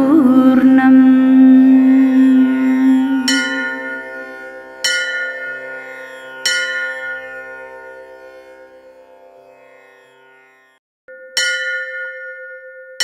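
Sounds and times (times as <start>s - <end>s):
bell strikes: 4.8s - 5.7s, 6.4s - 7.4s, 11.1s - 13.0s.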